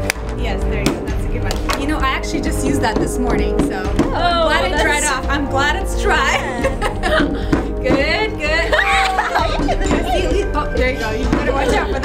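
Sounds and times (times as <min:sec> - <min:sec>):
background music: 0:00.0 - 0:12.0
plunger knocking on wooden block: 0:02.5 - 0:04.2.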